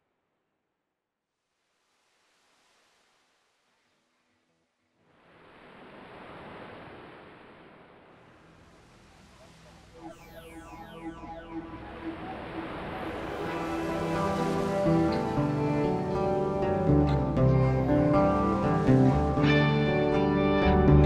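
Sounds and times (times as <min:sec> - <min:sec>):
surf-like wash of noise: 0:05.0 - 0:20.4
sustained pitched notes: 0:10.0 - 0:21.0.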